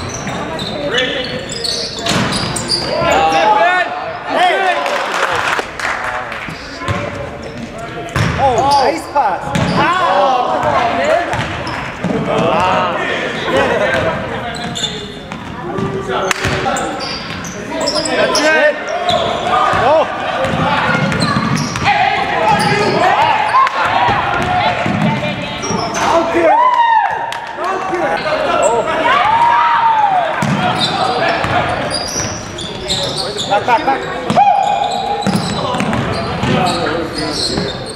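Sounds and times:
people talking and calling out: 0.0 - 37.9.

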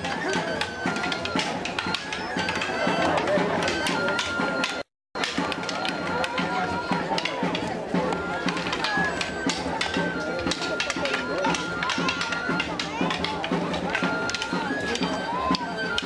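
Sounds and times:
crowd chatter: 0.0 - 16.0
pipe-like melody: 0.0 - 16.0.

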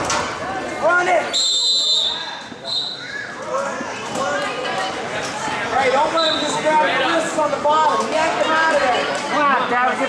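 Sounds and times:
referee's whistle blowing: 1.3 - 3.1, 6.2 - 6.6.

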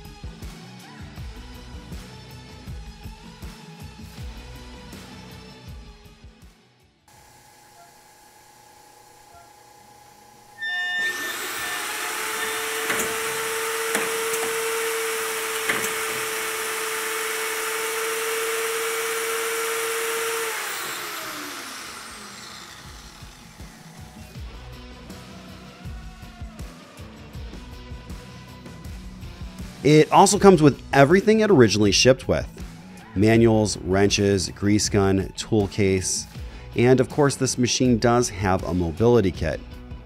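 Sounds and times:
machine motors whining: 7.1 - 24.5.

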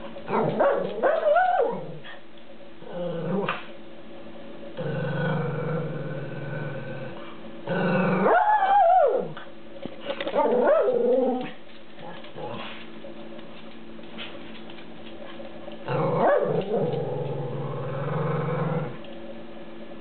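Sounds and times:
dog growling: 2.8 - 3.7, 4.8 - 9.4, 15.8 - 19.0.

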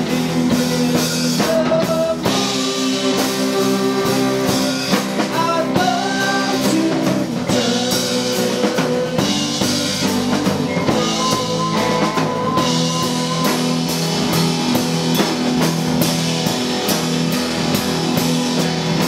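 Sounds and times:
live rock band playing: 0.0 - 19.0
bending electric guitar notes: 7.5 - 19.0.

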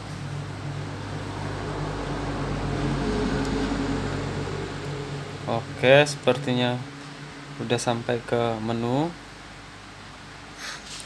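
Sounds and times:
higher drone: 0.0 - 9.2
low machine hum: 0.0 - 10.6.

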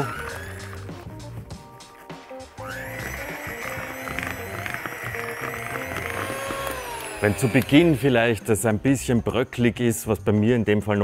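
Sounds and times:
electric hand mixer whining: 0.0 - 1.5, 2.4 - 8.6.

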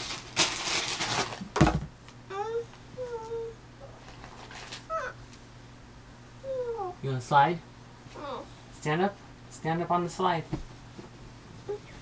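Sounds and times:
bedding rustling: 10.1 - 12.0
thump on mattress: 10.5 - 11.2.

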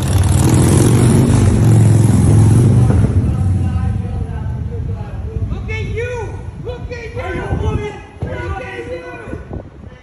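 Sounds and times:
vehicle engine running loudly: 0.0 - 5.3.

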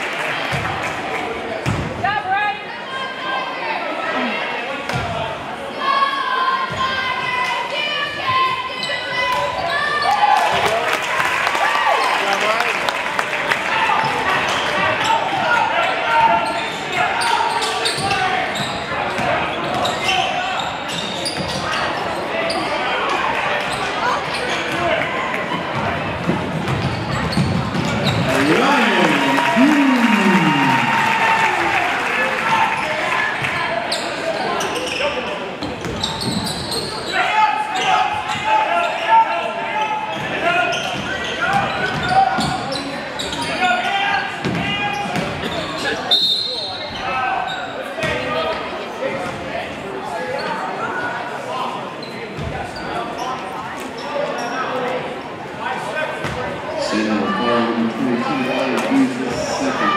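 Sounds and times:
crowd and bench voices: 0.0 - 59.9
referee's whistle: 46.1 - 46.8.

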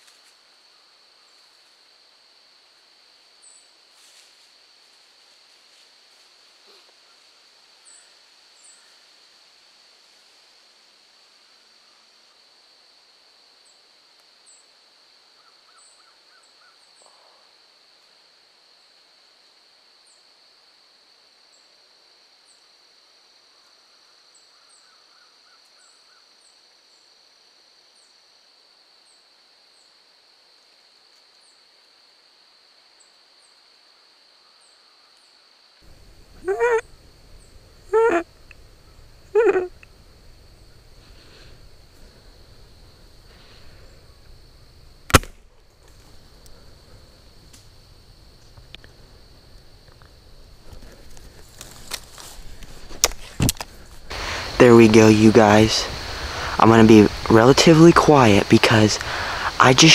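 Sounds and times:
high-pitched insect drone: 35.9 - 44.5, 54.0 - 59.9
loud bird calls: 36.3 - 38.2, 54.1 - 57.3, 58.5 - 59.7.

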